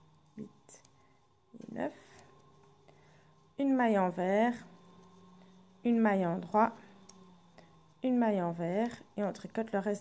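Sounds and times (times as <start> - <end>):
soft breathing: 0.0 - 8.1
faint steady hum: 0.0 - 10.0.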